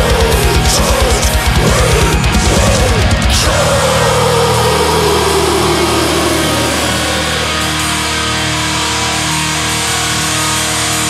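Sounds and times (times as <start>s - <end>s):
distorted tone sliding down: 0.0s - 9.1s
low drone: 0.0s - 10.1s
heavy metal music: 0.0s - 11.0s.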